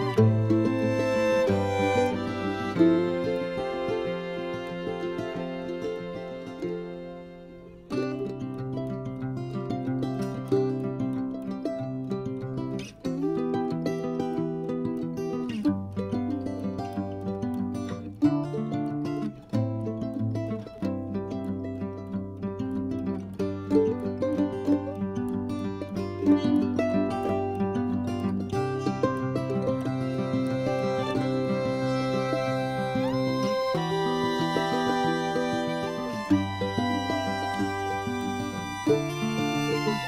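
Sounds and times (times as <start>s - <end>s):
instrumental music with plucked strings: 0.0s - 40.0s.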